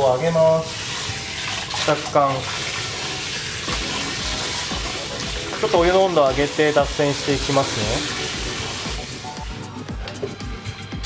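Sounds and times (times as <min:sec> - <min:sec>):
water running from tap: 0:00.0 - 0:09.7
steady music beat: 0:03.7 - 0:11.0.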